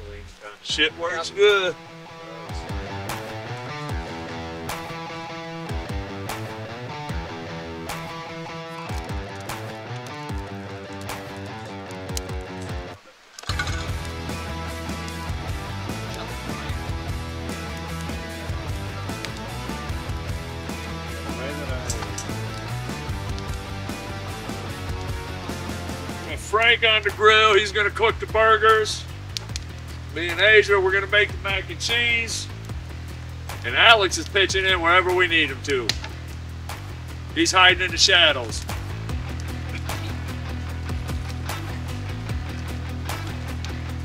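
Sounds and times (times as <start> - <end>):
guitar background music: 0.7 - 44.0.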